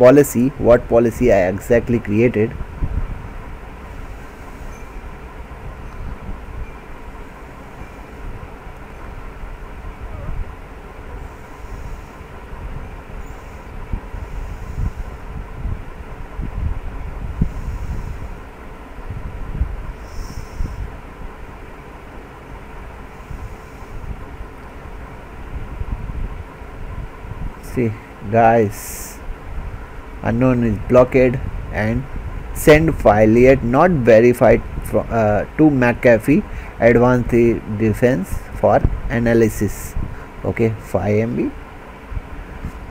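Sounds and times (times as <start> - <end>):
faint steady hum: 0.0 - 42.9
low background rumble: 0.0 - 42.9.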